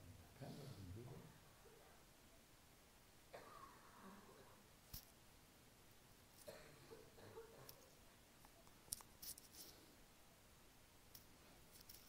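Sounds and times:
small faint clicks: 7.6s - 9.7s.

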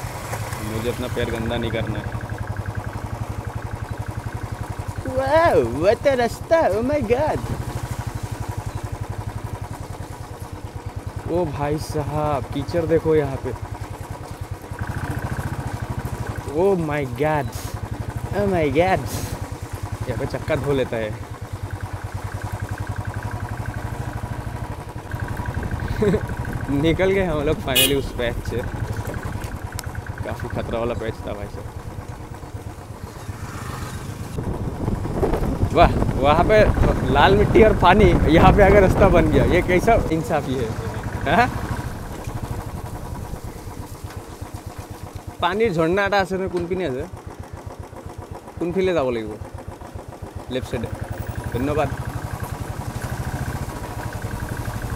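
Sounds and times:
motorcycle engine running at low revs: 0.0s - 54.9s.

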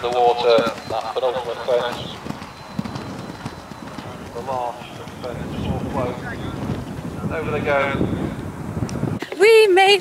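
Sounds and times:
horse hooves galloping on turf: 0.0s - 7.8s
wind on microphone: 0.0s - 10.0s.

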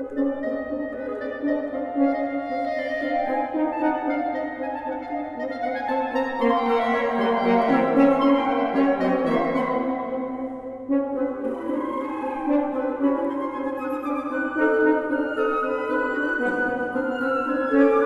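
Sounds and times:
wind quartet playing: 0.0s - 18.0s.

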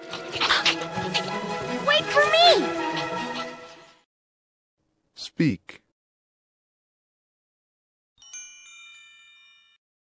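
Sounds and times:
film score with held chords: 0.0s - 4.0s.

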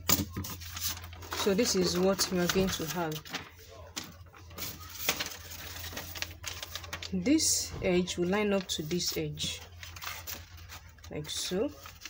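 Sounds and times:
paper and plastic rustling: 0.0s - 12.0s.

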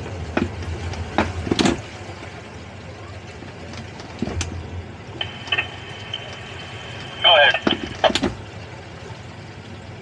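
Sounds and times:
boat engine idling: 0.0s - 10.0s
water noise: 0.0s - 10.0s
wind: 0.0s - 10.0s.

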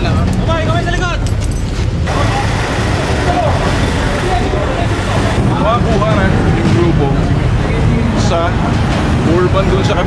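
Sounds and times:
traffic rumble: 0.0s - 10.0s
faint indistinct voices: 2.0s - 10.0s.

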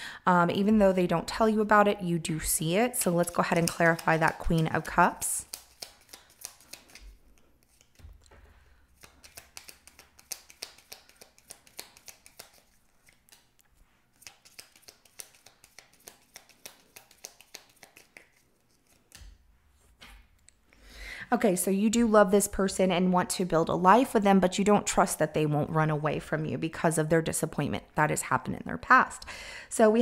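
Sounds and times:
cards being shuffled: 3.0s - 8.3s, 8.9s - 19.4s.

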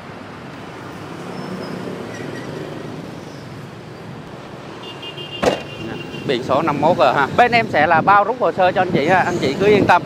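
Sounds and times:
road traffic noise: 0.0s - 10.0s.

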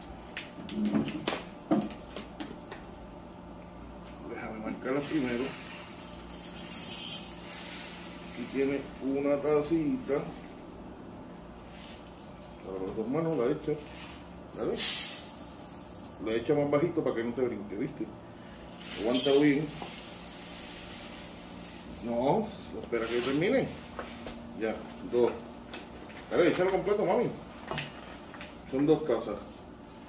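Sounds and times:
rice grains poured into pot: 5.1s - 10.6s, 18.8s - 25.2s.

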